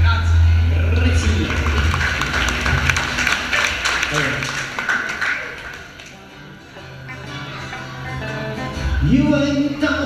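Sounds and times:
double bass low notes: 0:00.0 - 0:04.4
acoustic guitar: 0:00.0 - 0:10.0
electric guitar: 0:00.0 - 0:10.0.

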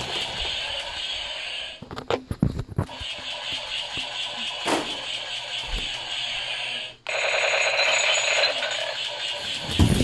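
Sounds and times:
rapid electronic beeping: 0:07.1 - 0:10.0.

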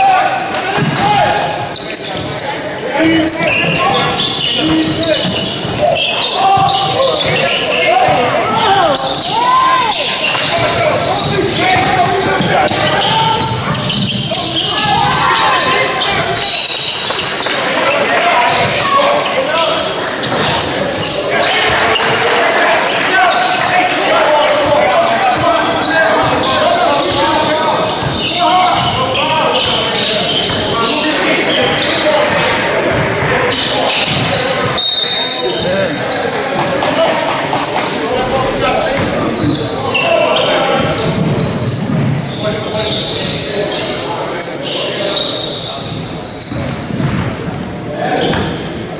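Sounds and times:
voices echoing in a hall: 0:00.0 - 0:48.9
shoes squeaking: 0:00.6 - 0:48.9
basketball bouncing: 0:45.9 - 0:47.5.

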